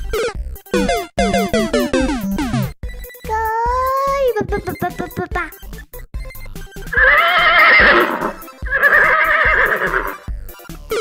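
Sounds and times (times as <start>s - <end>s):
fast polka music: 0.0s - 11.0s
horse whinnying: 6.9s - 10.2s.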